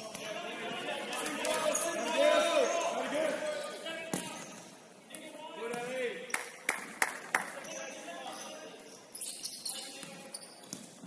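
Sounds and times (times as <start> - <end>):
indoor futsal game background: 0.0 - 11.0.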